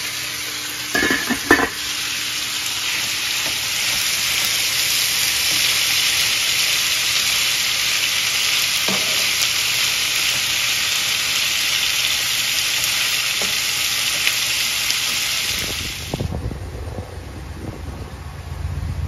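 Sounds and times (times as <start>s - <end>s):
food sizzling on a griddle: 0.0s - 16.3s
wind buffeting microphone: 15.6s - 19.0s.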